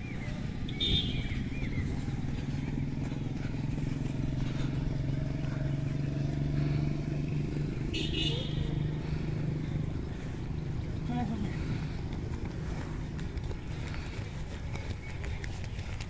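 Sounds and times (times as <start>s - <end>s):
birds chirping: 0.0s - 16.0s
vehicle engine running: 0.0s - 16.0s.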